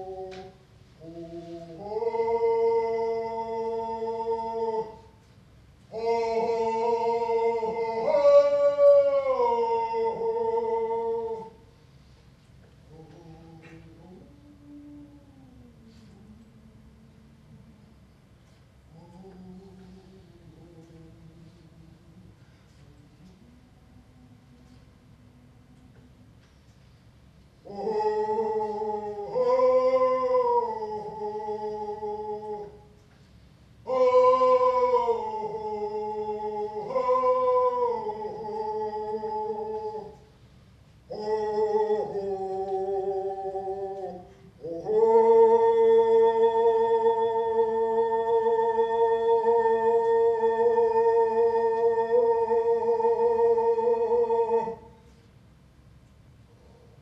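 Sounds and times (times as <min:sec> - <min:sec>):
man singing a held chant note: 0:00.0 - 0:05.2, 0:05.9 - 0:11.6, 0:12.8 - 0:18.0, 0:18.9 - 0:26.2, 0:27.6 - 0:33.0, 0:33.8 - 0:40.3, 0:41.1 - 0:55.1.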